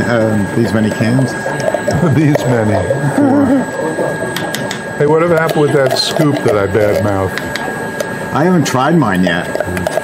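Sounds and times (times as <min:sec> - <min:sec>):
man talking: 0:00.0 - 0:03.2, 0:05.0 - 0:07.4, 0:08.3 - 0:10.0
freezer machine whining: 0:00.0 - 0:10.0
man laughing: 0:03.0 - 0:03.8.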